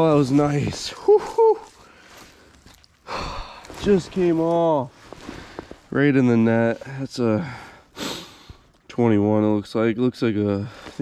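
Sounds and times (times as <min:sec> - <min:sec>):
man's excited vocal sounds: 0:00.9 - 0:01.7.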